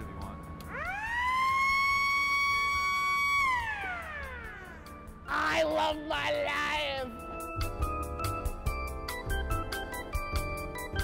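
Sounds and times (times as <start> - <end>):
siren winding up and down: 0.6 - 5.2.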